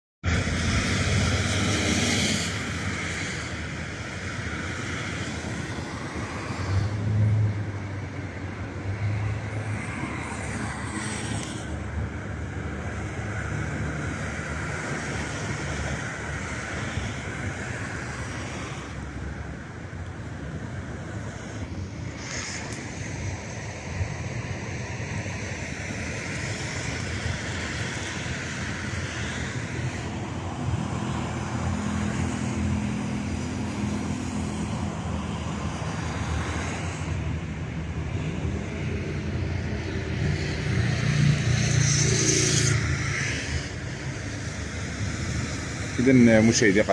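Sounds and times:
road traffic passing: 0.2 - 46.9.

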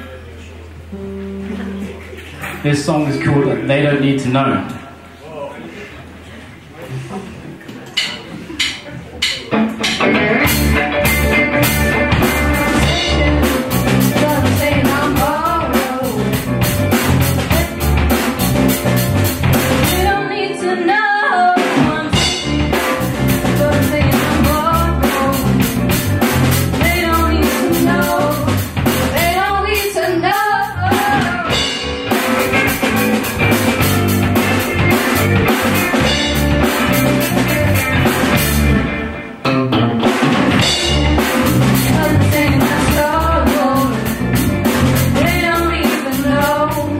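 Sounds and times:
rock band playing: 0.9 - 2.0, 8.0 - 46.9
women singing: 12.3 - 16.4, 19.8 - 25.7, 26.8 - 31.8, 40.8 - 44.1, 45.2 - 46.9.

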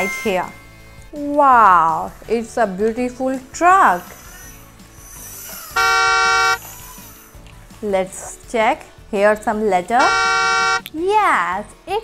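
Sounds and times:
faint background music: 0.0 - 12.0
truck horn honk: 5.8 - 6.6, 10.0 - 10.9.

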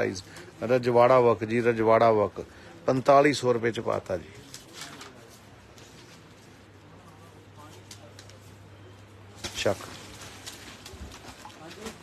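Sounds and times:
fabric rustling: 9.4 - 12.0.

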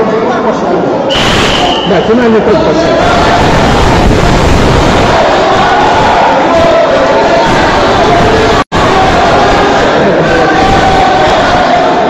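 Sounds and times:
crowd shouting and cheering: 0.9 - 12.0.

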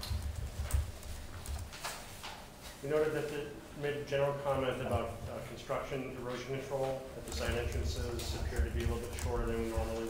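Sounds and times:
paper rustling: 0.0 - 3.4, 6.3 - 10.0
paper thumps: 7.3 - 10.0.

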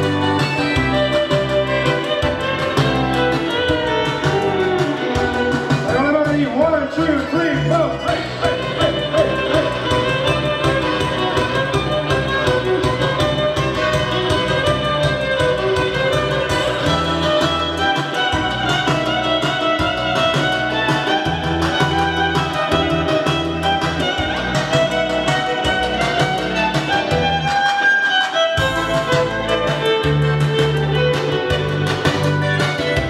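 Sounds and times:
stepping bass line: 0.0 - 27.9, 28.6 - 33.0
electric violin melody: 0.0 - 33.0
steady beat: 0.0 - 33.0.

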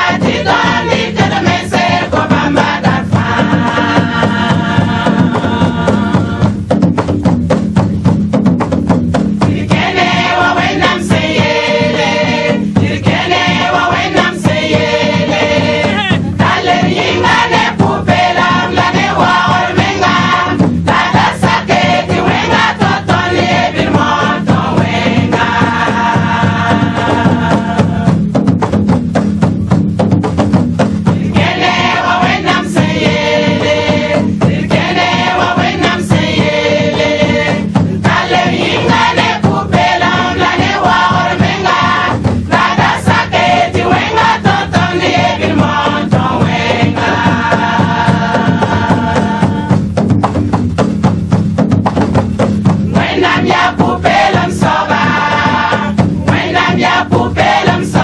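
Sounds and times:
women's choir singing: 0.0 - 6.6, 9.4 - 28.3, 31.1 - 49.8, 52.8 - 58.0
sharp percussion strikes: 0.0 - 58.0.

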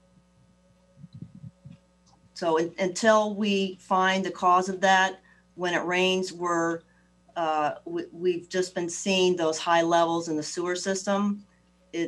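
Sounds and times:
faint electrical hum: 0.0 - 12.0
soft low thumps: 0.2 - 2.4.

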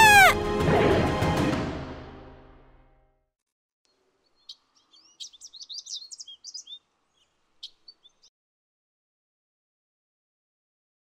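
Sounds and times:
background music: 0.0 - 3.1
faint outdoor hiss: 3.9 - 8.3
songbirds chirping: 3.9 - 8.3.

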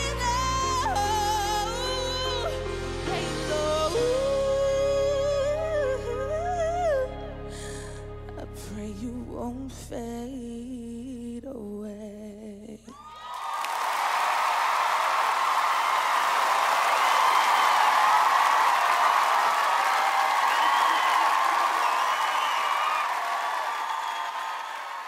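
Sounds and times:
audience applauding and cheering: 12.9 - 25.0
high shouts: 13.0 - 25.0.

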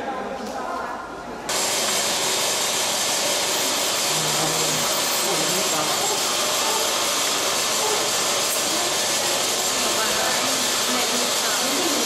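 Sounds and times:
dental suction hissing: 1.5 - 12.0.

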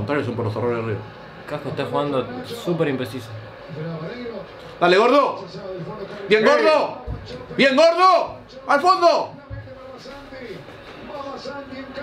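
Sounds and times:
people talking in room: 0.0 - 12.0.

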